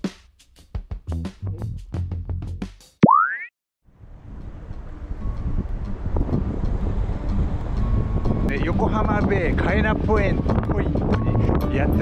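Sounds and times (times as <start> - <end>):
cartoon boing sound effect: 3.0 - 3.5
wind noise on microphone: 4.0 - 12.0.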